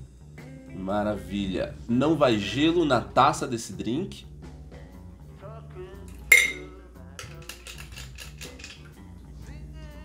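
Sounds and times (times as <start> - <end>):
background music: 0.0 - 10.0
cocktail shaker clinking on strainer: 6.3 - 9.0.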